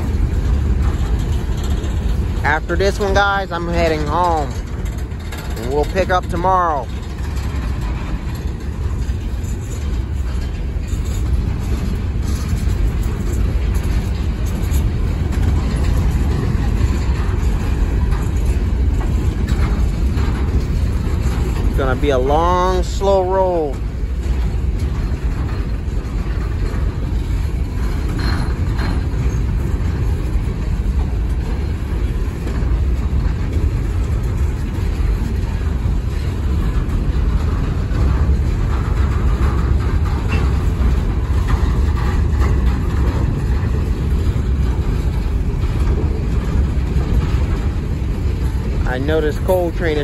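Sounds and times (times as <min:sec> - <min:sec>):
steel wheels rumbling on track: 0:00.0 - 0:50.0.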